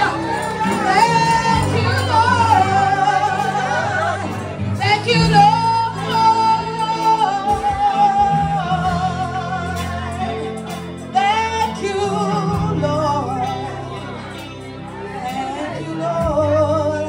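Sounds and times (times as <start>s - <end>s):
instrumental accompaniment: 0.0s - 17.0s
woman singing into microphone: 0.0s - 17.0s.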